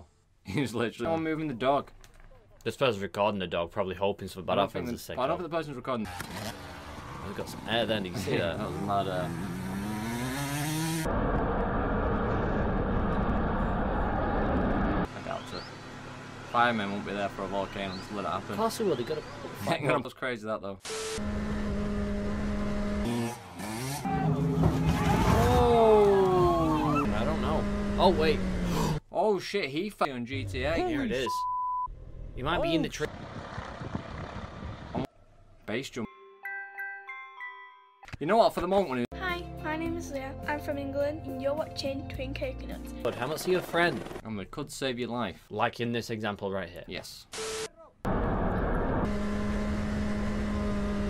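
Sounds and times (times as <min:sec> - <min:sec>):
road noise: 0:06.0 - 0:19.8, 0:20.9 - 0:29.0, 0:31.9 - 0:35.1, 0:47.4 - 0:51.0
motorcycle engine revving: 0:06.1 - 0:19.6, 0:21.2 - 0:24.9, 0:26.8 - 0:29.0, 0:49.0 - 0:51.0
wind rushing: 0:32.7 - 0:35.1
wind buffeting microphone: 0:33.1 - 0:35.0.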